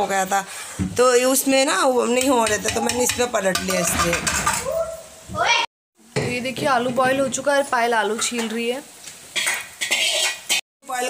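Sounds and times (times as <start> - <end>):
steel utensils clinking and scraping: 9.4 - 10.6.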